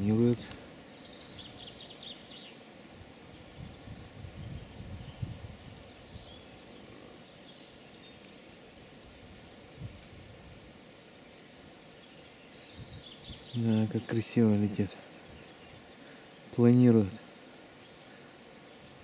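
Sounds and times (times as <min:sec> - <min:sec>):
small birds chirping: 0:00.0 - 0:19.0
low rumbles on microphone: 0:03.5 - 0:06.5.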